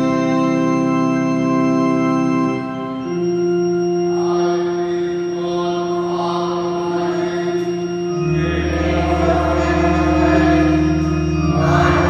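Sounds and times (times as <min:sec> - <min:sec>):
organ holding low chord: 0:00.0 - 0:12.0
congregation singing a hymn: 0:02.5 - 0:12.0.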